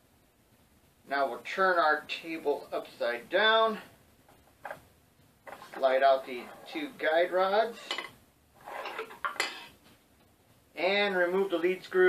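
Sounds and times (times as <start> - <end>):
metal-on-metal scrape: 5.5 - 7.1, 7.7 - 9.8.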